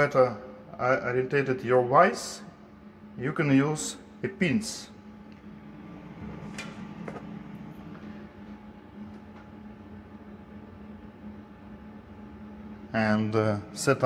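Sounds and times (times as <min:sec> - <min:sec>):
low machine hum: 0:00.0 - 0:14.0.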